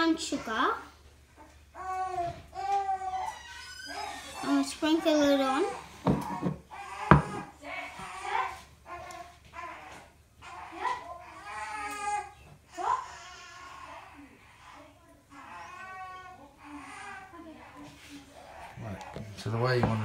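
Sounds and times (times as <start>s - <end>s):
child babbling and whining: 1.8s - 18.8s.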